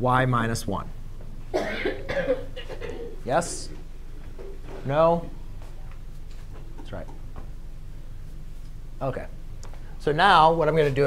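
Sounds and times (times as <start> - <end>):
person coughing: 1.5 - 3.3.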